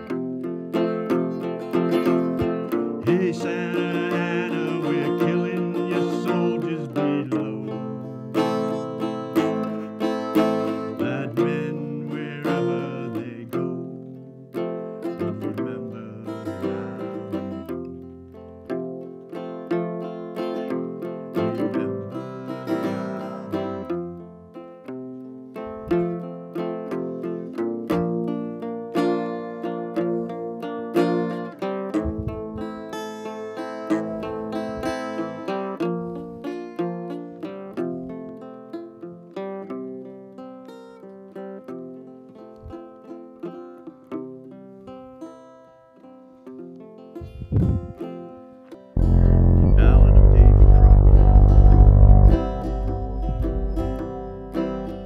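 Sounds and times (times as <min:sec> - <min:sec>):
plucked acoustic guitar: 0:00.0 - 0:55.0
high wavering melody line: 0:49.0 - 0:55.0.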